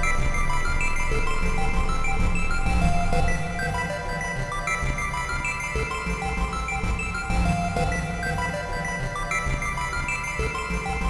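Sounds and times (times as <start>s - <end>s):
synthesizer melody: 0.0s - 11.0s.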